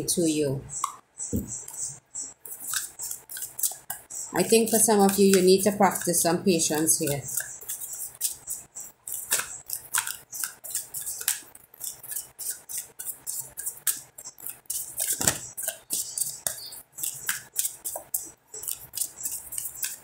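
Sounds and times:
cards shuffled by hand: 9.1s - 20.0s.

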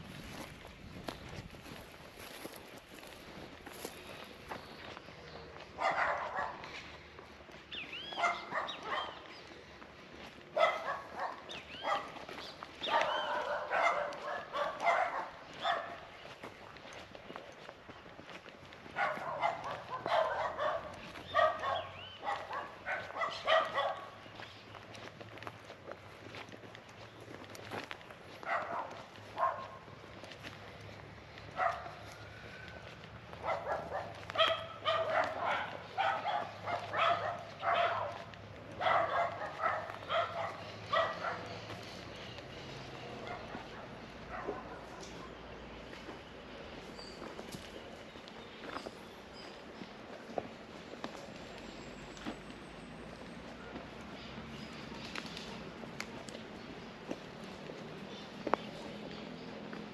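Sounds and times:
dogs barking: 5.6s - 9.6s, 10.3s - 17.2s, 18.7s - 24.8s, 28.3s - 46.2s.

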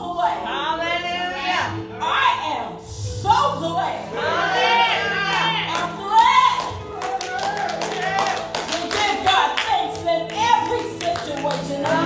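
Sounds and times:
held keyboard chords: 3.6s - 12.0s
hand clapping: 6.6s - 12.0s
woman singing into a microphone: 8.8s - 12.0s.

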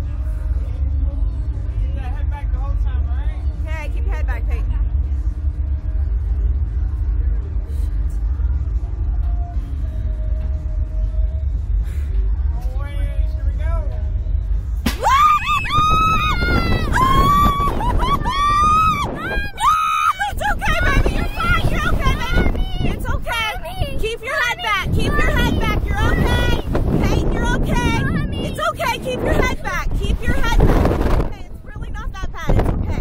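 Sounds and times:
low rumble: 0.0s - 33.0s
rushing wind: 14.6s - 33.0s.

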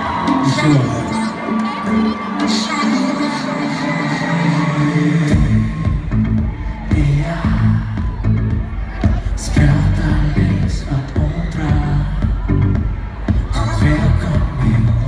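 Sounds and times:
crowd cheering and whooping: 0.0s - 15.0s
live pop band playing: 0.0s - 15.0s
heavy bass and beat: 5.2s - 15.0s.

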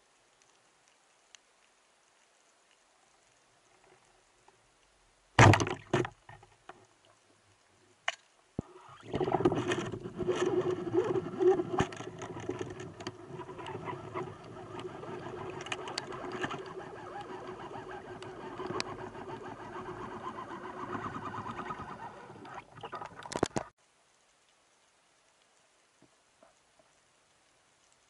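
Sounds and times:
rush of water and bubbles: 8.6s - 23.8s
sharp clicks and rattles: 9.3s - 23.7s.

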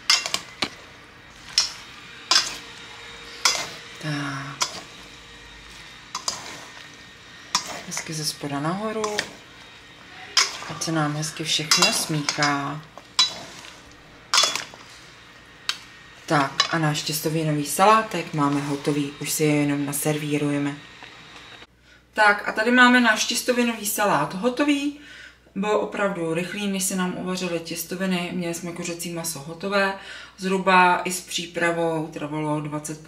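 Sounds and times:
salad servers clinking metal bowl: 0.0s - 19.0s
spoon knocking metal bowl: 11.7s - 12.6s.

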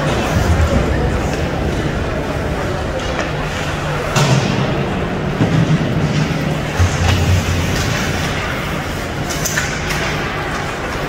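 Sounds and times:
low arena hum: 0.0s - 11.0s
hockey sticks knocking boards: 5.3s - 11.0s.

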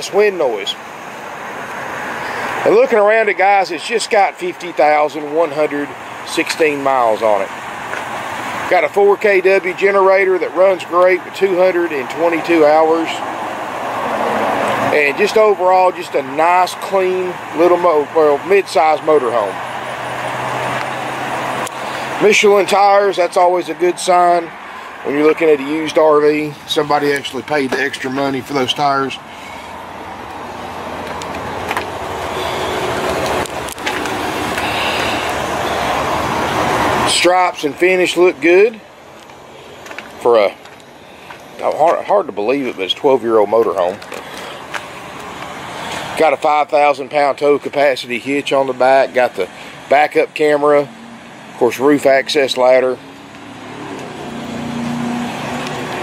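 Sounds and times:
vehicle passing by: 11.6s - 46.4s, 48.8s - 56.0s.

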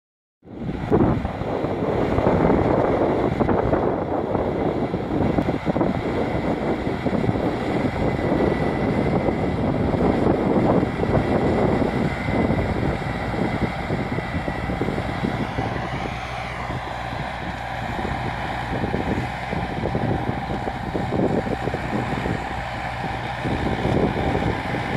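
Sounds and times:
tractor and rotavator running: 0.5s - 24.9s.

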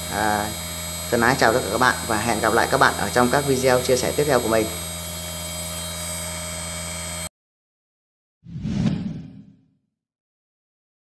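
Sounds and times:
steady electrical hum: 0.0s - 7.3s
whoosh sound effect: 8.5s - 9.6s.

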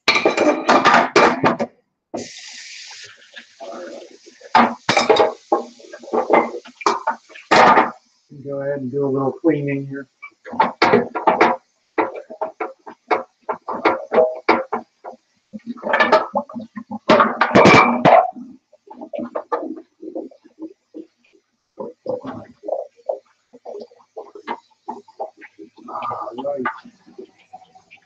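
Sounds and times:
dishes and glass jars clinking: 0.0s - 1.7s, 3.8s - 8.0s, 10.4s - 18.4s, 22.0s - 28.0s.

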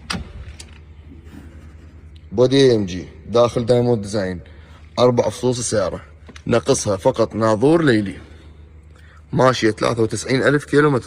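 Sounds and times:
car door opening click: 0.0s - 0.8s
low steady hum: 0.0s - 11.0s.

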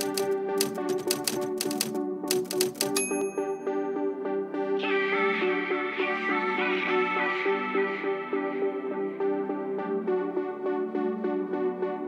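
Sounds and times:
typewriter key clacks: 0.0s - 3.4s
background music: 0.0s - 12.0s
typewriter bell ding: 0.6s - 1.8s, 2.4s - 3.8s.

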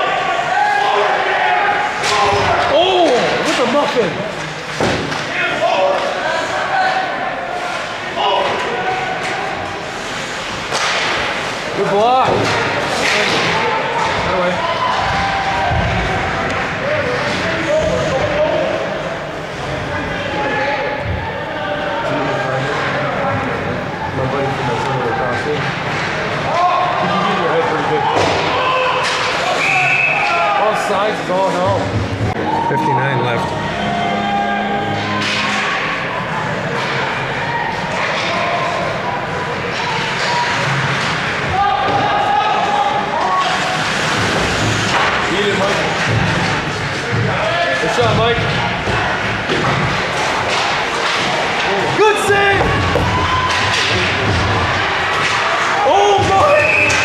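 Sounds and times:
hubbub of voices and calls: 0.0s - 57.0s
puck and players hitting boards: 2.0s - 6.2s, 10.6s - 18.6s, 28.0s - 30.5s, 35.0s - 42.6s, 43.2s - 57.0s.

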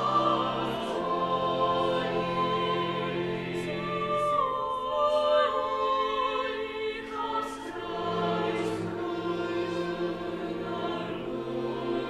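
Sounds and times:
choir singing sustained chords: 0.0s - 12.0s
string quartet: 0.0s - 12.0s.

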